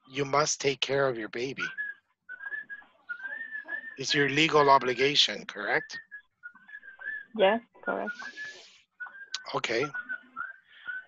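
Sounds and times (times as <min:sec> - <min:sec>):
high whistling tone: 0:00.1 - 0:11.0.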